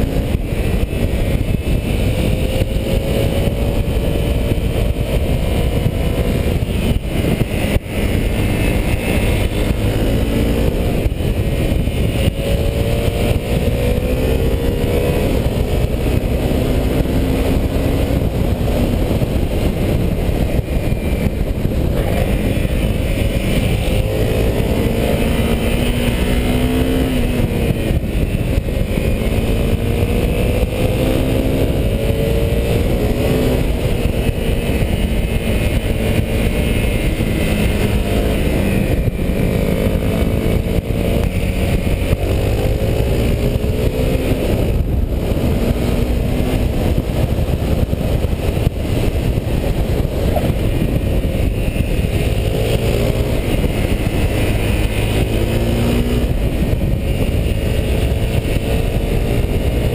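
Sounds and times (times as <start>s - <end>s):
motorcycle engine accelerating: 0.0s - 59.9s
wind on microphone: 0.0s - 59.9s.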